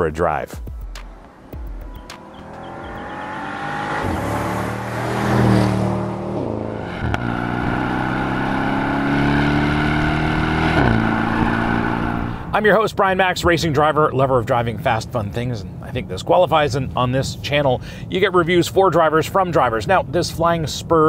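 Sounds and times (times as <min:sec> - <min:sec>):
gearbox upshift pitch drop: 0:00.7 - 0:12.5
car engine accelerating past: 0:01.2 - 0:12.5
car engine pulling under load: 0:01.2 - 0:12.5.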